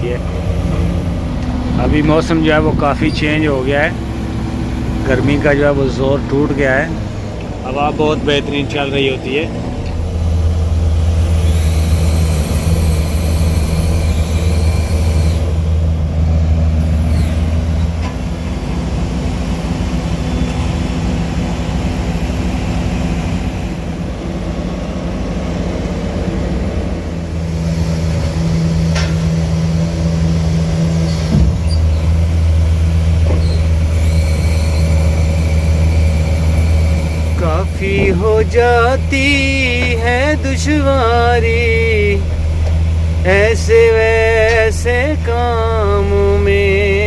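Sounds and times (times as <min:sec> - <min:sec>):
crane diesel engine running: 0:00.0 - 0:47.0.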